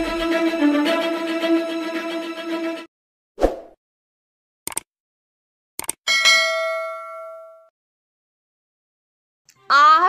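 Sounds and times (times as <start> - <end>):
bell chime: 6.1 - 7.7.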